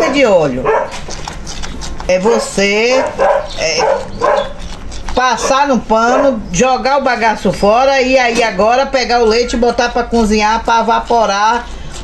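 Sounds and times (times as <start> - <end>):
dog barking: 0.0 - 1.0, 2.1 - 4.6, 5.4 - 6.5.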